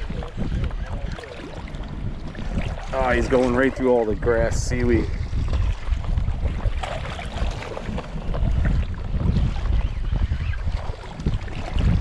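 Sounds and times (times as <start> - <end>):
water lapping: 0.0 - 12.0
wind rumbling on microphone: 0.0 - 12.0.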